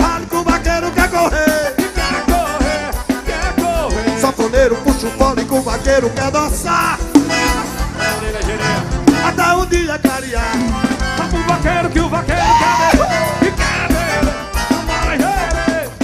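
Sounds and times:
live band music with steady beat: 0.0 - 16.0.

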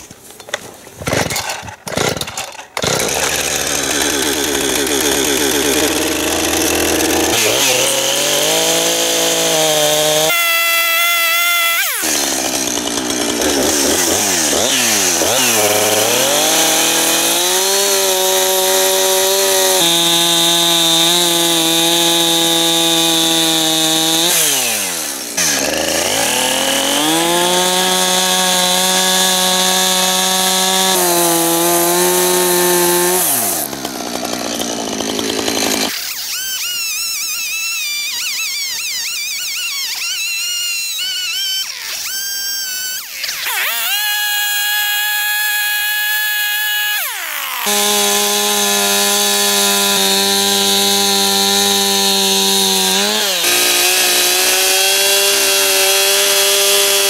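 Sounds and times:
chainsaw cutting wood: 0.0 - 57.0.

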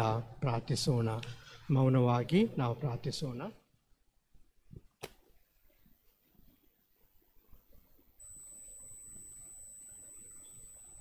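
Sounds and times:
faint room noise: 0.0 - 11.0
high-pitched electronic tone: 8.2 - 11.0.

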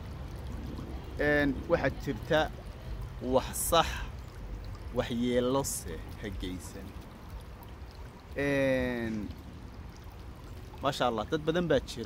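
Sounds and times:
low background rumble: 0.0 - 11.6.

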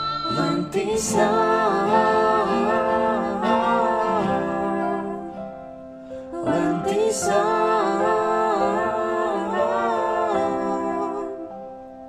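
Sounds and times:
group singing worship song: 0.0 - 11.7.

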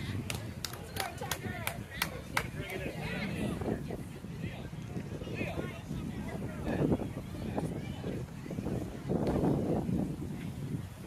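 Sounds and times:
people talking: 0.0 - 11.0
hand claps: 0.2 - 2.8.

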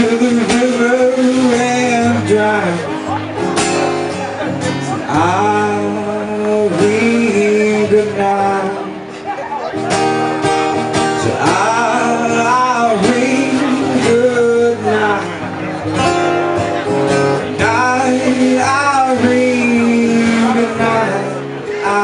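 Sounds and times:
man singing: 0.0 - 3.4, 4.4 - 9.2, 11.2 - 22.0
acoustic guitar strumming: 0.0 - 22.0.

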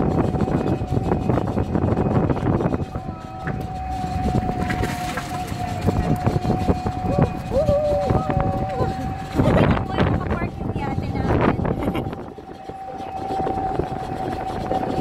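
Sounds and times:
traffic noise: 0.0 - 15.0
thin steady high tone: 0.1 - 15.0
people's voices: 2.6 - 14.6.

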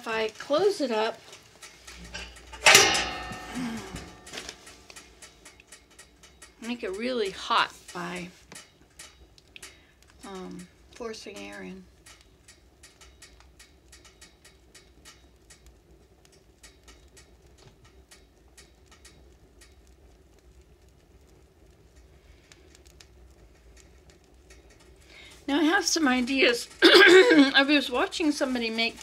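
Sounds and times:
woman's voice: 0.0 - 1.2, 6.6 - 8.4, 10.2 - 11.8, 25.5 - 29.0
wood fire crackling: 0.0 - 29.0.

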